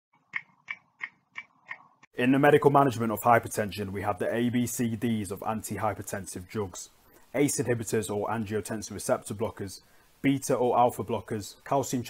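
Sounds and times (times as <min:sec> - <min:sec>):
stopwatch ticking: 0:00.2 - 0:02.1.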